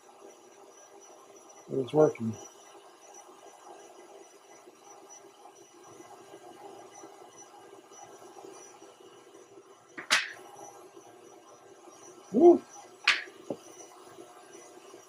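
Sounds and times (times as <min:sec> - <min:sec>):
sharp click: 0:13.1 - 0:13.3.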